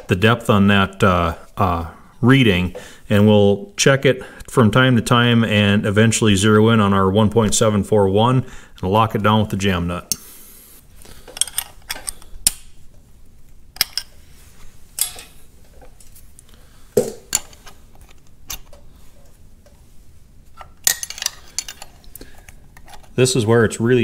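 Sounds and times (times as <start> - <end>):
wrenches clinking on metal: 11.4 - 12.3, 20.8 - 22.0.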